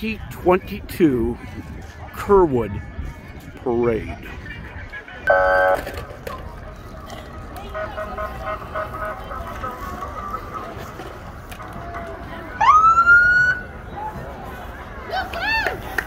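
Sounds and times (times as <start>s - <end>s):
street noise: 0.0s - 16.0s
police siren whoop: 12.6s - 13.6s.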